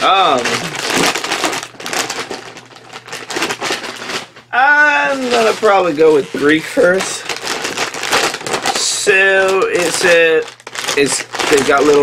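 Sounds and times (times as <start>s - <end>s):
chip bag crinkling: 0.0s - 12.0s.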